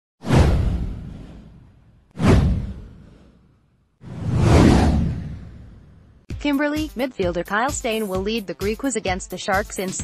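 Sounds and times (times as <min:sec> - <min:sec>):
deep low boom: 0:00.3 - 0:03.2
whoosh sweeping down: 0:04.0 - 0:06.2.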